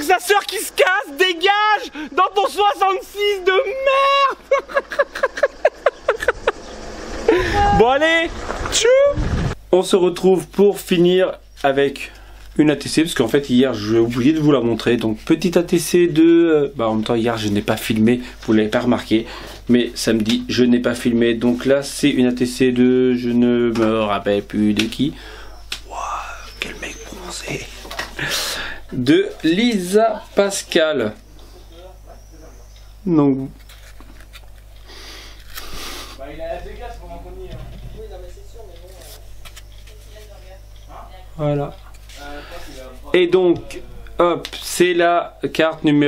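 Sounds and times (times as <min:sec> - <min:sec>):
hearty laughter: 0:04.0 - 0:07.8
low car engine rumble: 0:04.4 - 0:09.6
man whispering: 0:25.5 - 0:27.8.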